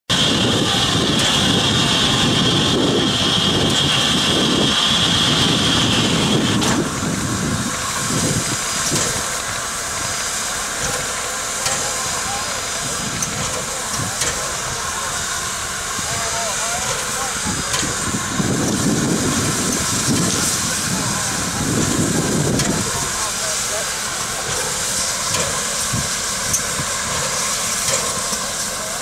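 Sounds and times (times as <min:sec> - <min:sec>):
rumbling machine noise: 0:00.1 - 0:29.0
steam locomotive hissing: 0:00.1 - 0:29.0.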